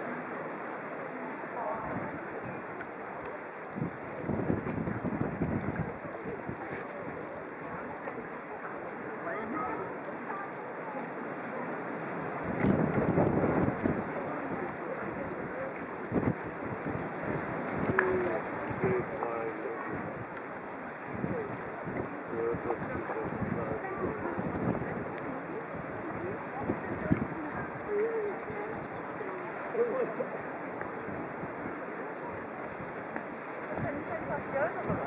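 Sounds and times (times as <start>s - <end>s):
river noise: 0.0s - 35.0s
wind buffeting microphone: 3.7s - 8.0s, 12.2s - 29.6s, 30.8s - 35.0s.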